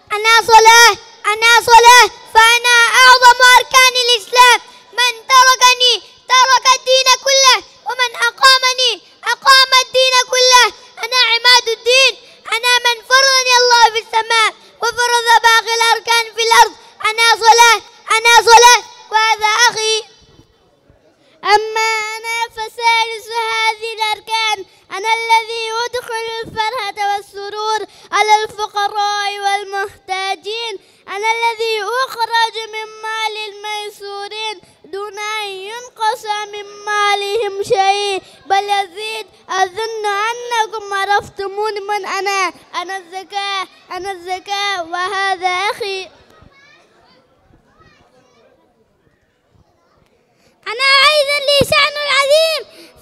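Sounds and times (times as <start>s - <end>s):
child's amplified voice: 0.0s - 20.5s, 21.2s - 48.6s, 49.5s - 53.0s
faint children's voices: 0.0s - 53.0s
boy singing into a microphone: 22.5s - 30.5s.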